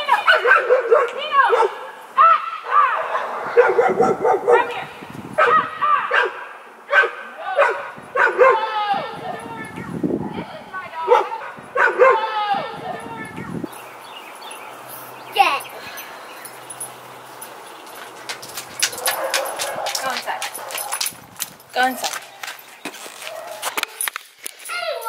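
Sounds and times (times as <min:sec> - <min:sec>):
dogs barking and yelping: 0:00.1 - 0:01.9, 0:02.7 - 0:09.6, 0:11.0 - 0:13.1, 0:14.9 - 0:21.2, 0:23.2 - 0:24.1.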